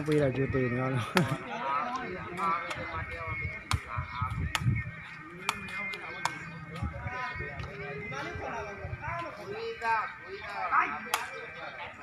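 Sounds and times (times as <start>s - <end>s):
ball struck with sharp knocks: 5.4s - 6.4s.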